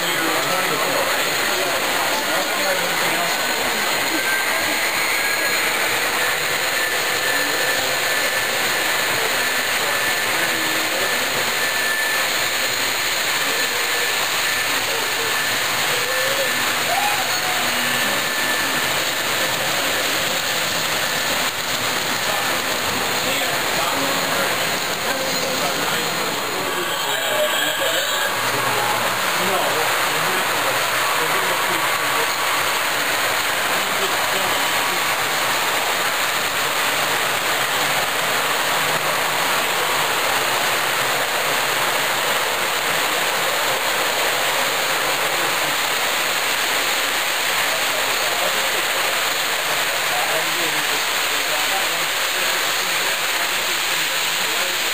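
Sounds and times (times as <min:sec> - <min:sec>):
model trains running: 0:00.0 - 0:54.9.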